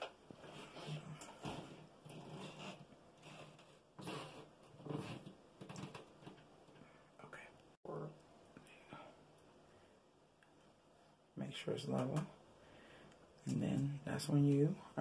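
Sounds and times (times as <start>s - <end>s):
person whispering faintly: 7.2s - 8.1s.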